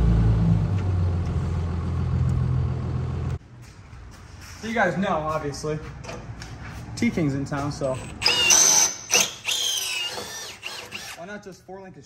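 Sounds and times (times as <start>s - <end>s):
cordless power drill whine: 8.2s - 11.2s.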